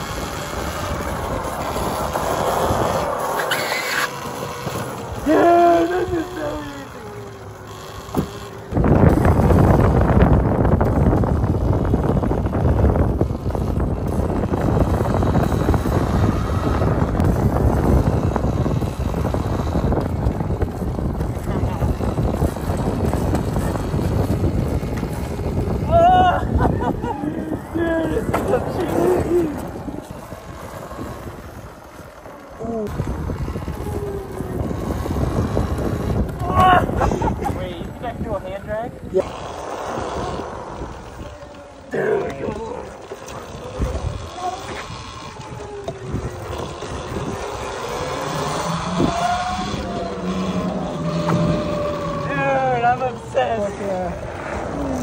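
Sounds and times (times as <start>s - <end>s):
electric quad motor and tyres: 0.0s - 55.0s
loud steady rush of noise: 0.0s - 55.0s.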